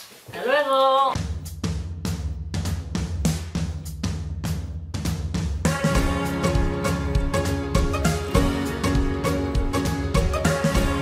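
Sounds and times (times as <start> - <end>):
steady drum beat: 1.2 - 11.0.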